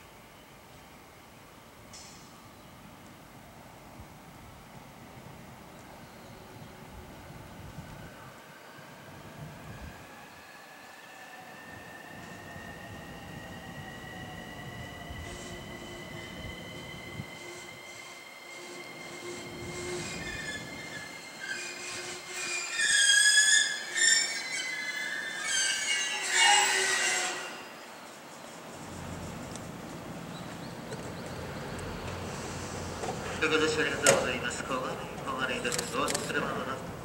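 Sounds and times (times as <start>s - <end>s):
electric train whine: 0.0s - 37.0s
brake and wheel screeching: 15.2s - 27.8s.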